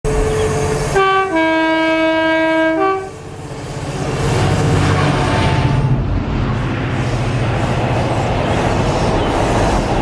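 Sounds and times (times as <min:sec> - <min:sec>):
locomotive two-tone horn: 0:00.1 - 0:03.3, 0:04.8 - 0:06.0.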